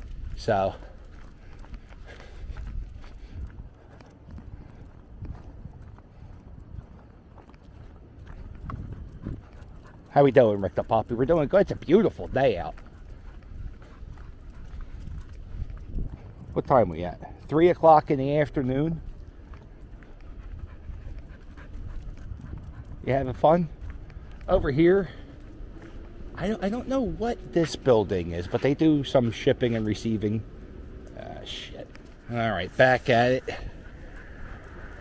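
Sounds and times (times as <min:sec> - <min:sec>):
low rumble: 0:00.0 - 0:10.1, 0:19.0 - 0:35.0
footsteps on concrete: 0:00.0 - 0:35.0
puppy panting: 0:00.2 - 0:16.4, 0:18.1 - 0:32.4, 0:33.0 - 0:35.0.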